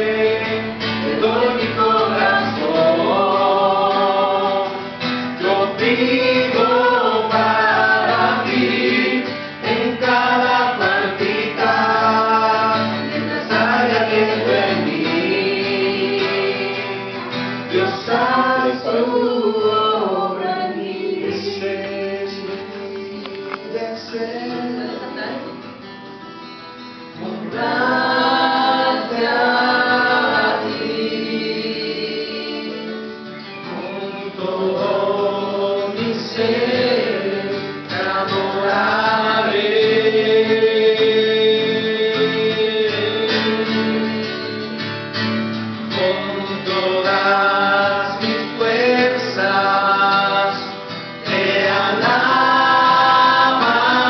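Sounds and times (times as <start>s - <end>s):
acoustic guitar: 0.0s - 54.0s
voices singing: 0.0s - 54.0s.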